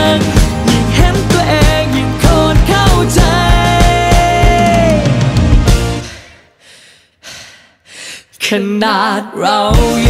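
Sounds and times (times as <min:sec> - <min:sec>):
man singing: 0:00.0 - 0:05.4, 0:08.3 - 0:10.0.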